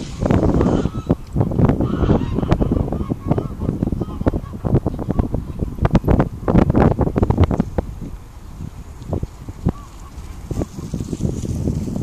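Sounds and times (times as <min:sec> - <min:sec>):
wind buffeting microphone: 0:00.0 - 0:12.0
goose-like honking calls: 0:00.5 - 0:01.2, 0:01.8 - 0:04.6.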